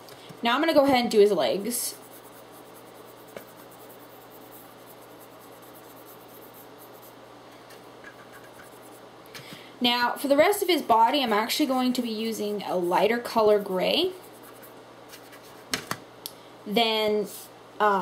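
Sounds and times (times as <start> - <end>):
brush scratching: 1.6 - 9.1, 13.4 - 15.7.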